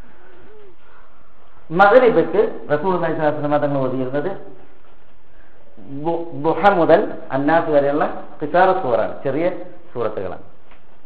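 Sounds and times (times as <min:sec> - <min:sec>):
man speaking loudly: 0:01.7 - 0:04.5, 0:05.9 - 0:10.5.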